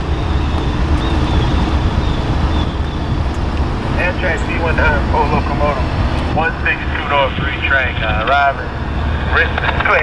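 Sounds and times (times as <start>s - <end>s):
diesel locomotive rumble: 0.0s - 10.0s.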